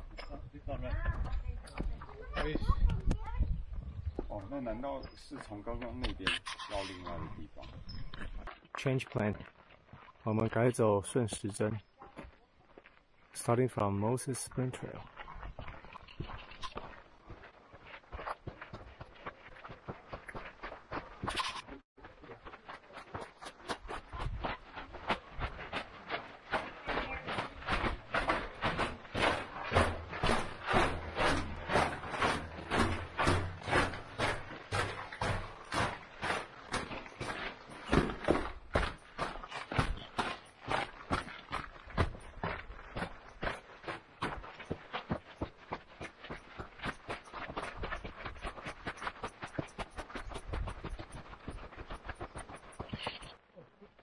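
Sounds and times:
footsteps on gravelly trail: 0:00.0 - 0:54.0.

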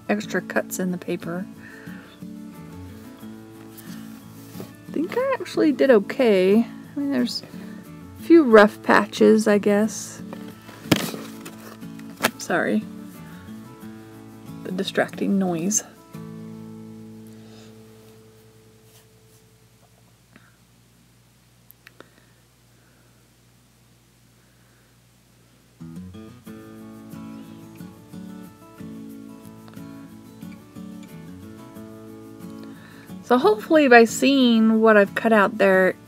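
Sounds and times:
soft acoustic guitar music: 0:00.0 - 0:20.0, 0:25.8 - 0:36.0.

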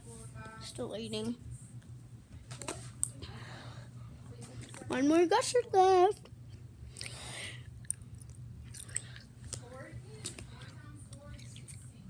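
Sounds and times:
steady low hum: 0:00.0 - 0:12.0
person chewing snack food: 0:06.9 - 0:09.6
wet mouth clicks: 0:07.8 - 0:09.3.

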